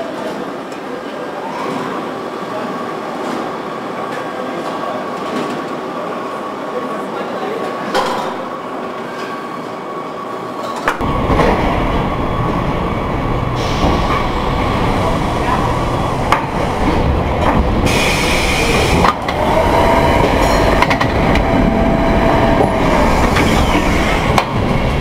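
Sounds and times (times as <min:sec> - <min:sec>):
assembly line machinery din: 0:11.0 - 0:25.0
deep rumble: 0:18.8 - 0:25.0.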